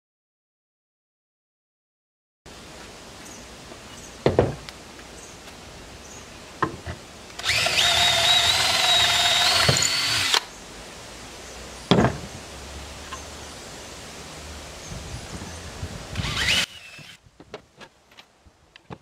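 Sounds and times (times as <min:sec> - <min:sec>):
cordless drill driving screw: 0:07.4 - 0:10.5, 0:16.2 - 0:17.2.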